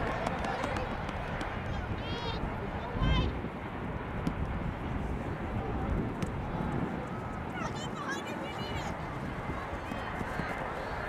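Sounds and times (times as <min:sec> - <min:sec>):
steady low rumble: 0:00.0 - 0:11.0
distant shouts and calls: 0:07.0 - 0:11.0.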